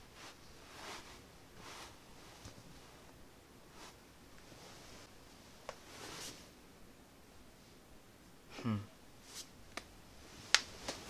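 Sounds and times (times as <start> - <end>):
soft rustle: 0.0 - 6.6, 9.2 - 11.0.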